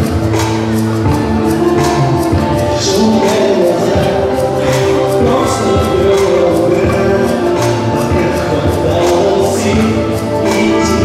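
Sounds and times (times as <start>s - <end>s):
dance music: 0.0s - 11.0s
people singing: 1.7s - 11.0s.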